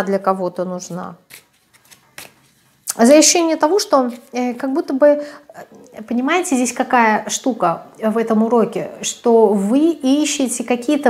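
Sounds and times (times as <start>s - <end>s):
woman speaking: 0.0s - 1.3s, 2.9s - 11.0s
card deck being handled: 1.3s - 2.8s, 4.0s - 4.4s.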